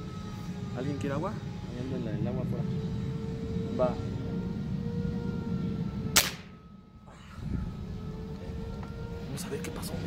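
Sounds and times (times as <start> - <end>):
air rifle shot crack: 6.2 - 6.5.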